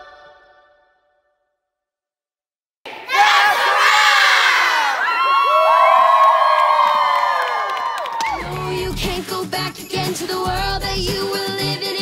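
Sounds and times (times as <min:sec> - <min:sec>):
girls cheering and screaming: 0:03.1 - 0:08.9.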